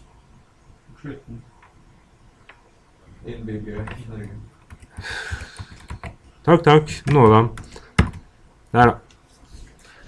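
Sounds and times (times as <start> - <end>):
keyboard clicks: 3.8 - 6.2, 7.0 - 8.3.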